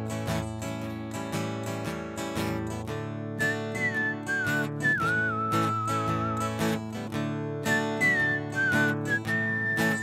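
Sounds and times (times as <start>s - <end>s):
strummed acoustic guitar: 0.0s - 10.0s
whistled melody: 3.4s - 6.8s, 7.6s - 10.0s.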